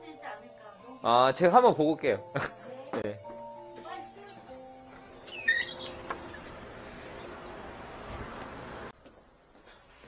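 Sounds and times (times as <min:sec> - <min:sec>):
door squeaking open: 0:05.2 - 0:06.6.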